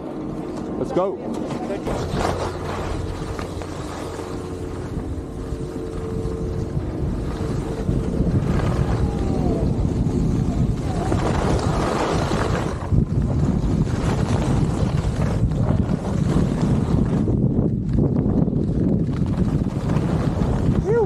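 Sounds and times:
wind rushing over microphone: 0.0s - 21.0s
skis scraping over snow: 0.6s - 21.0s.

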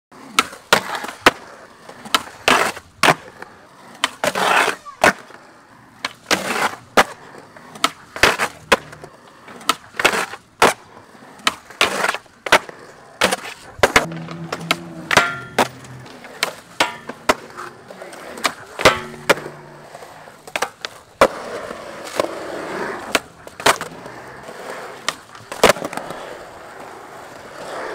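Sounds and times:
skateboard wheels rolling: 0.1s - 27.9s
skateboard pops and landing slaps: 0.2s - 5.4s, 6.0s - 24.1s, 24.9s - 26.2s
skateboard grinding on ledge: 0.2s - 27.9s.

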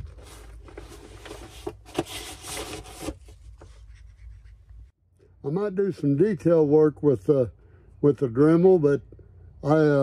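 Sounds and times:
plastic rustling and rubbing: 0.0s - 4.6s.

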